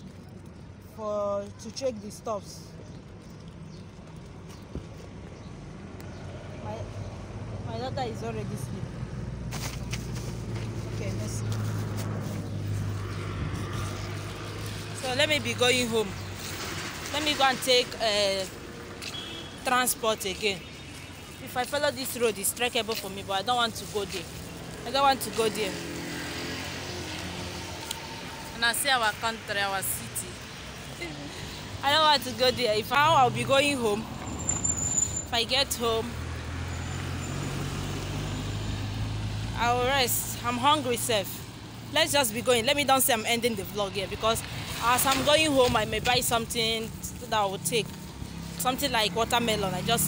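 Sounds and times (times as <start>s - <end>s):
street noise: 0.0s - 50.0s
motor vehicle running: 2.4s - 19.5s, 20.2s - 50.0s.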